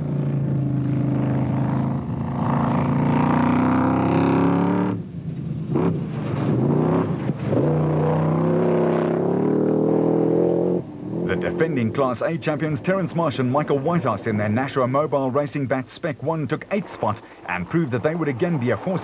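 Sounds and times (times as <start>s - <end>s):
buggy engine revving high: 0.0s - 15.5s.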